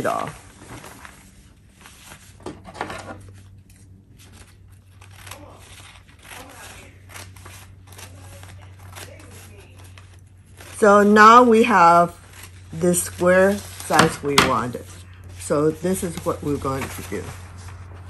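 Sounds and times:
paper crinkling: 0.0 - 2.4, 3.2 - 18.0
scissors snipping paper: 4.8 - 15.0.

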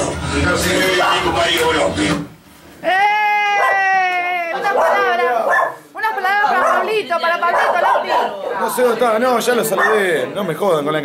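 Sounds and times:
long howl-like cry: 2.8 - 5.4.

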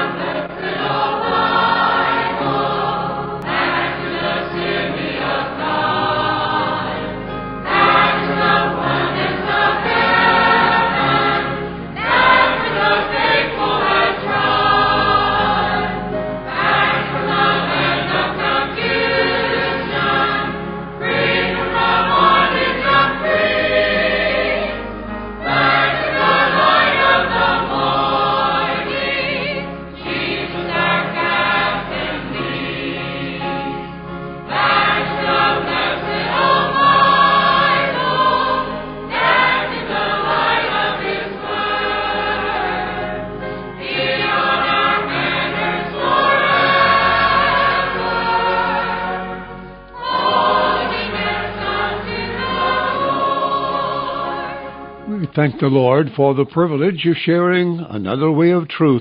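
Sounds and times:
choir singing a hymn: 0.0 - 56.3.

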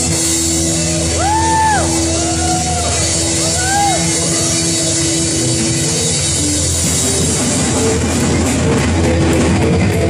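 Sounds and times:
rock band playing live: 0.0 - 10.0.

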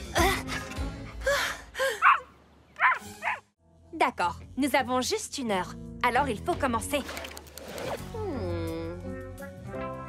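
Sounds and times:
cartoon background music: 2.8 - 10.0.

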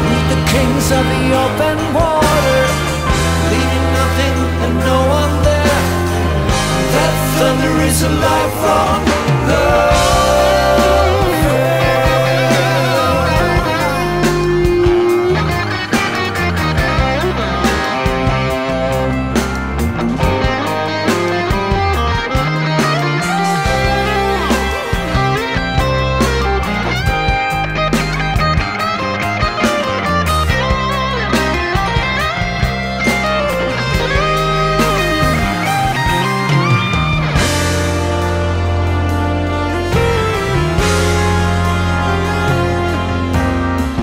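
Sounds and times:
bass line: 0.0 - 44.0
drums: 0.0 - 44.0
electric guitar lead: 0.0 - 44.0.

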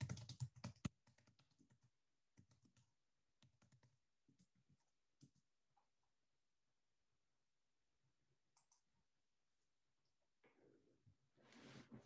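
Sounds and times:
typing on computer keyboard: 0.0 - 5.4.

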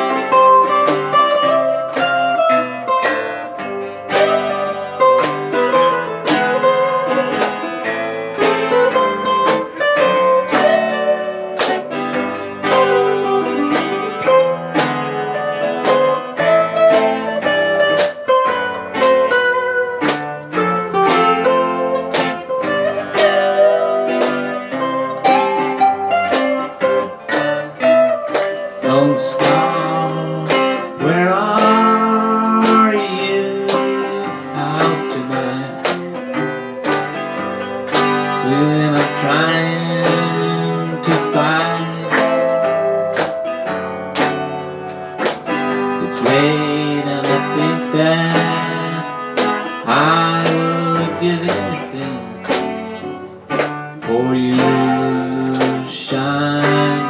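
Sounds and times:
acoustic guitar playing: 0.0 - 57.0
man singing: 28.7 - 36.4, 38.2 - 43.1, 46.0 - 52.5, 54.0 - 57.0.

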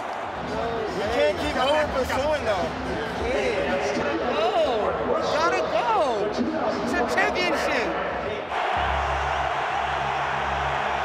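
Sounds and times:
stadium crowd roar: 0.0 - 2.0, 7.5 - 11.0
background music: 0.0 - 11.0
men talking: 0.4 - 8.5.

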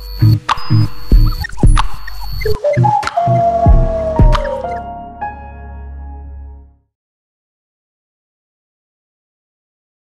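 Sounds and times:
held synth notes: 0.0 - 6.1
tone sliding down in pitch: 0.2 - 4.9
low thumps falling in pitch: 0.7 - 4.8.

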